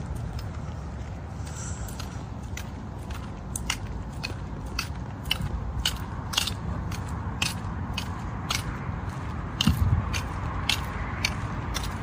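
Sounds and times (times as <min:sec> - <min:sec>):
footsteps on paved path: 0:00.0 - 0:12.0.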